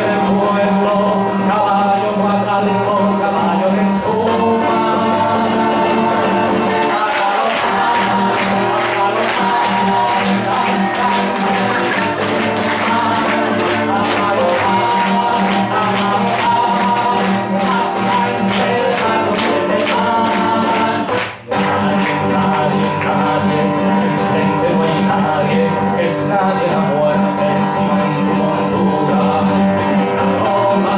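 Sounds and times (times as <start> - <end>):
acoustic guitar strumming: 0.0 - 30.9
people singing: 0.0 - 30.9
hand clapping in time: 5.8 - 24.6.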